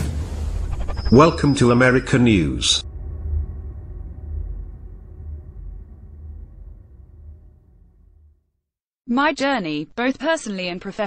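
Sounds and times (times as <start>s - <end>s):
low steady rumble: 0.0s - 8.6s.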